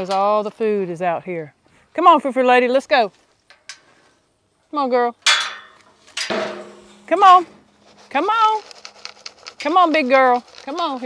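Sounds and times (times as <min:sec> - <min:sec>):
metal gate clanking and ringing: 0:05.3 - 0:07.8.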